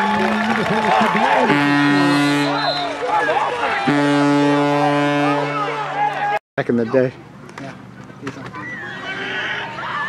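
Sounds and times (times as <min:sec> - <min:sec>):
crowd shouting and cheering: 0:00.0 - 0:07.1, 0:08.2 - 0:10.0
horn blasts: 0:01.4 - 0:03.0, 0:03.6 - 0:06.0.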